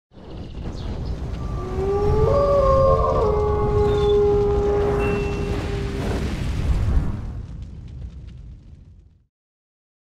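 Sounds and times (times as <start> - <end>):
low rumble: 0.3 - 9.2
wolf howling: 1.4 - 6.3.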